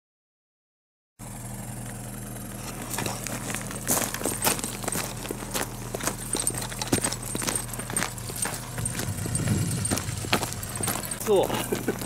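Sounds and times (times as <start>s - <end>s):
motor humming: 1.2s - 12.0s.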